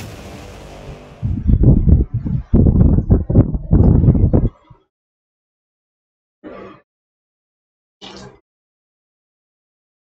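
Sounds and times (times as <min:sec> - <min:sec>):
whoosh: 0:00.0 - 0:02.2
deep rumbling pulses: 0:00.2 - 0:04.6.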